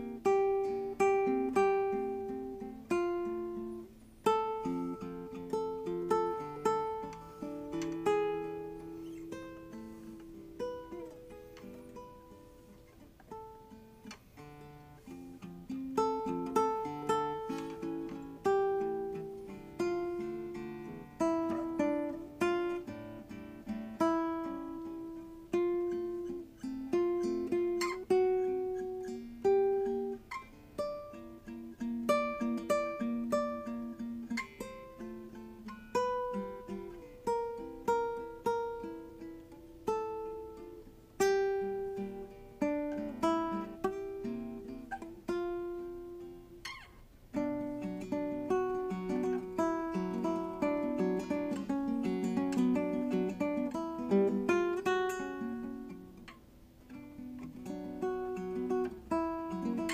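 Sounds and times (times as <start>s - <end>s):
solo fingerstyle classical guitar: 0.0s - 59.9s.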